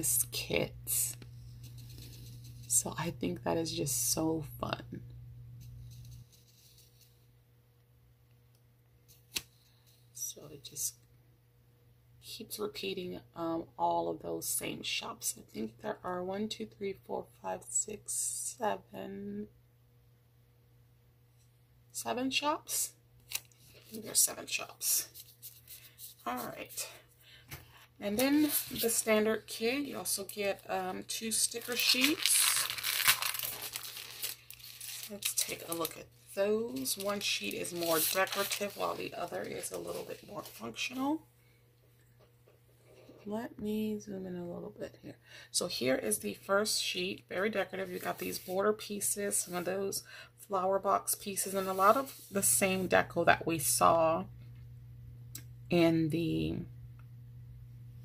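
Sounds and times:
low steady hum: 0:00.0 - 0:58.0
tape rustling in hand: 0:01.0 - 0:02.9, 0:05.6 - 0:07.3, 0:23.2 - 0:41.0
plastic sleeve crinkling: 0:28.2 - 0:40.9.

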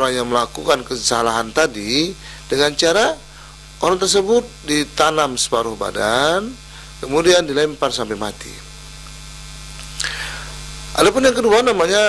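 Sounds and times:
electrical mains hum: 0:00.0 - 0:12.0
short soft hiss: 0:08.8 - 0:10.9.

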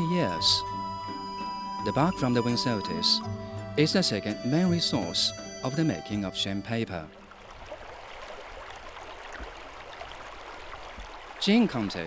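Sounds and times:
flowing river water: 0:00.0 - 0:12.0.

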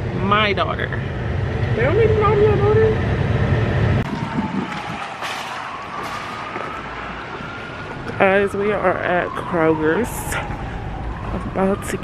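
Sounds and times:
traffic noise: 0:00.0 - 0:12.0
faint siren gliding in pitch: 0:01.8 - 0:12.0
wind on microphone: 0:01.9 - 0:06.6.

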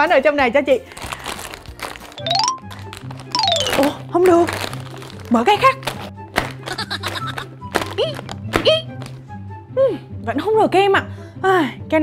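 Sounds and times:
background music: 0:00.0 - 0:12.0
plastic snack bag crinkling: 0:00.9 - 0:08.4.

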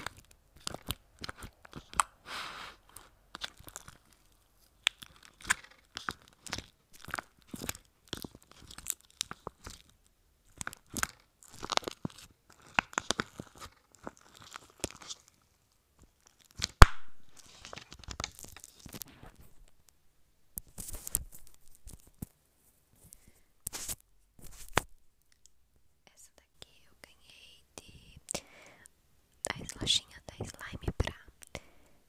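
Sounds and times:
fingers squishing sticky slime: 0:00.0 - 0:02.2, 0:02.8 - 0:15.4.

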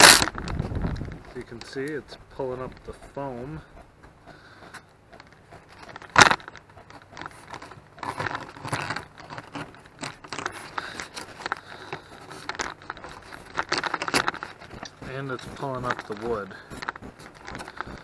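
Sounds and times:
sharp crack: 0:00.0 - 0:00.6.

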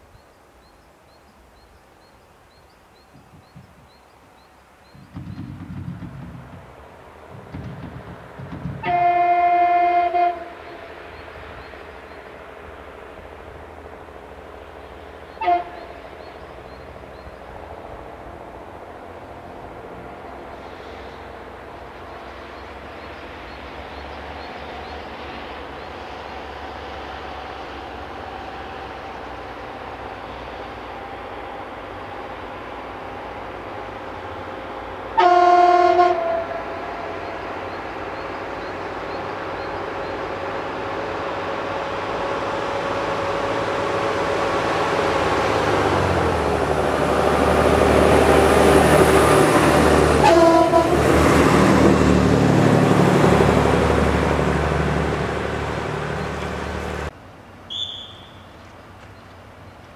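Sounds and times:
diesel railbus passing: 0:00.0 - 0:59.9
train horn: 0:08.8 - 0:11.0, 0:15.3 - 0:16.1, 0:35.1 - 0:37.5, 0:48.3 - 0:51.6.

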